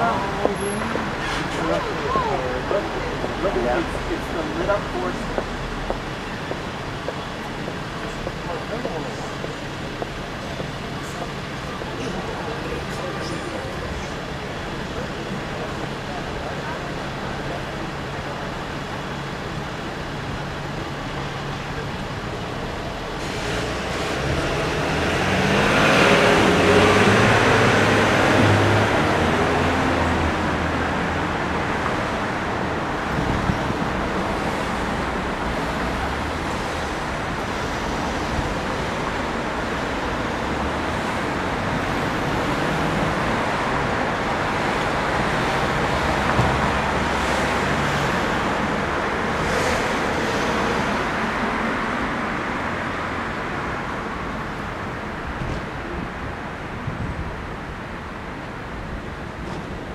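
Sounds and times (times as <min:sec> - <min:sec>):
city street traffic: 0:00.0 - 0:59.9.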